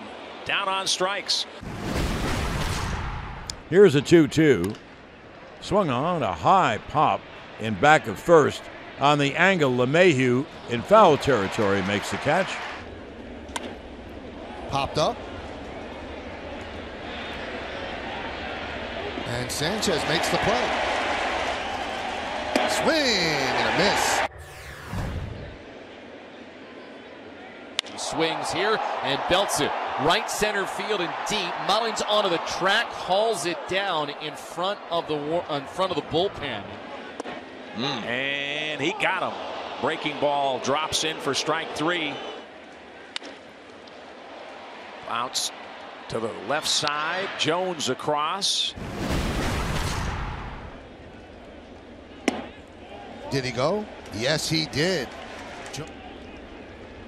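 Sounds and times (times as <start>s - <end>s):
crowd cheering: 0.0s - 1.4s, 3.8s - 48.8s, 49.4s - 57.0s
whoosh with deep rumble: 24.3s - 25.7s.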